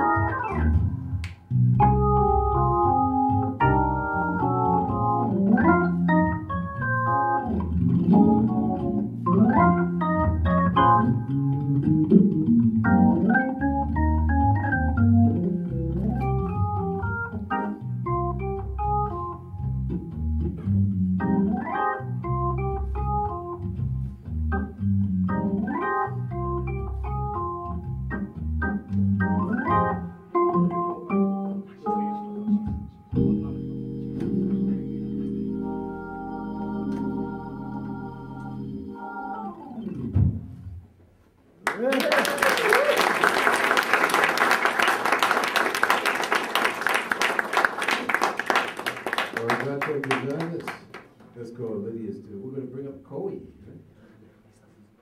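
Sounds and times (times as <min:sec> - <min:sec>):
organ playing chords and runs: 0:00.0 - 0:40.8.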